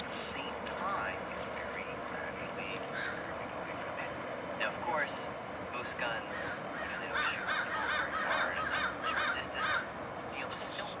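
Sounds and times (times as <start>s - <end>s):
birds cawing: 2.9s - 3.5s, 6.2s - 10.0s.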